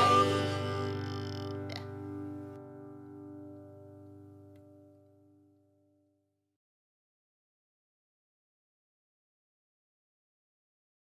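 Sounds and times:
plucked string chord ringing: 0.0s - 5.5s.

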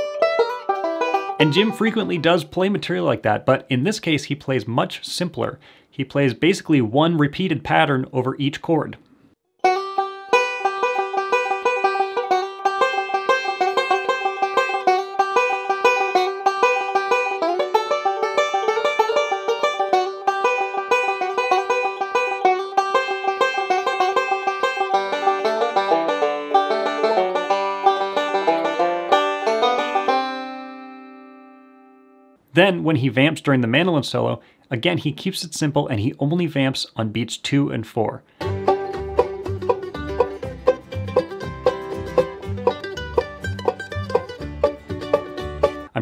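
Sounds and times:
banjo picking fast rolls: 0.0s - 4.4s, 9.6s - 30.8s, 38.4s - 46.0s.

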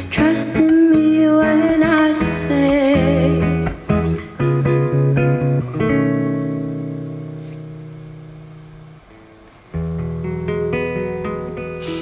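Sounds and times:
acoustic guitar chord ringing: 2.6s - 12.0s.

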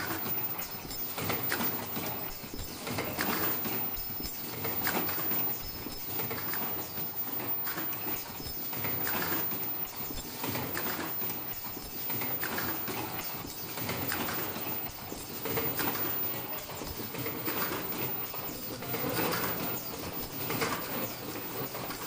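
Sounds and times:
machines clacking and clattering: 0.0s - 22.0s.

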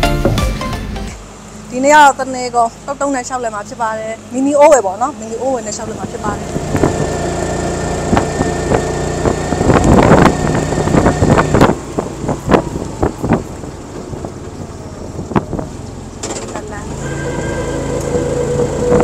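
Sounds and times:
small engine running: 5.4s - 19.0s.

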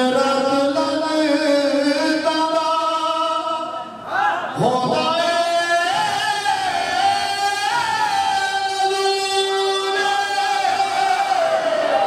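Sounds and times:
man singing into a microphone: 0.0s - 3.8s, 4.6s - 12.0s.

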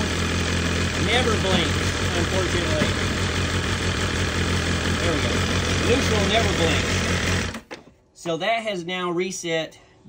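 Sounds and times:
motorcycle engine idling: 0.0s - 7.6s.

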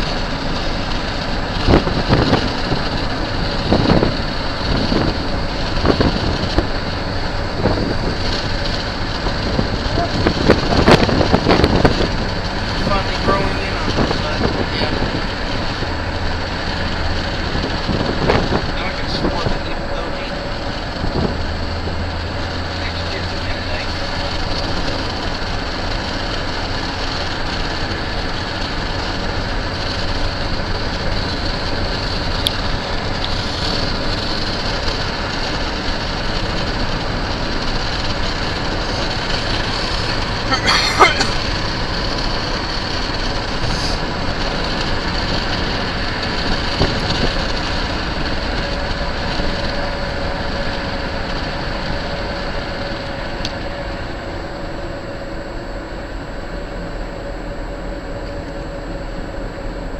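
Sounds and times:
road and tyre noise inside car: 0.0s - 59.9s.

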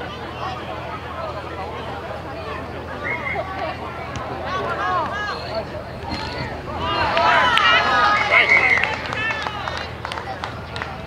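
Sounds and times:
players and spectators shouting: 2.6s - 10.4s.

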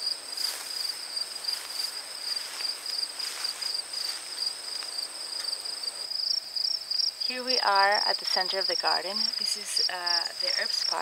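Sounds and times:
rustling footsteps on path: 0.0s - 5.8s
insect chirping trill: 0.0s - 11.0s.

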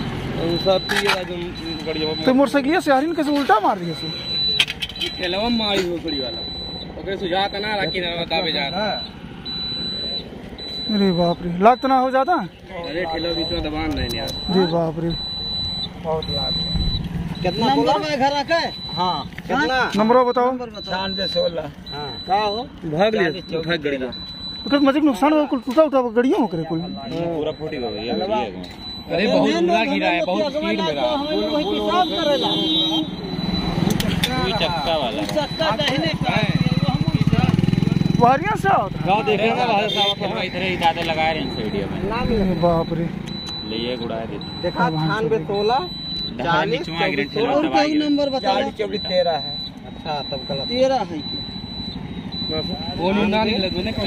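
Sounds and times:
low roadside hum: 0.0s - 54.0s
people talking at once: 9.8s - 54.0s.

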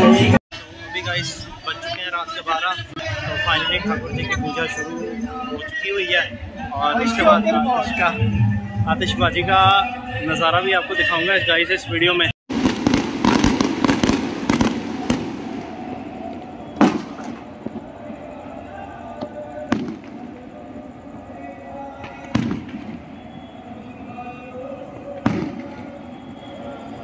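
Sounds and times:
firework crackle: 12.5s - 27.0s.

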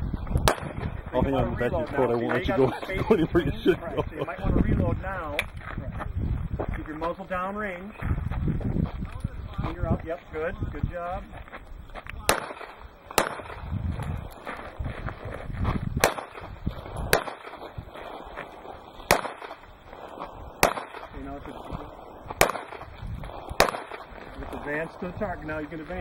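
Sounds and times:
handgun shots: 12.3s - 13.6s, 16.0s - 16.5s, 17.1s - 17.6s, 19.1s - 19.6s, 20.6s - 21.1s, 22.4s - 22.8s, 23.6s - 24.1s.

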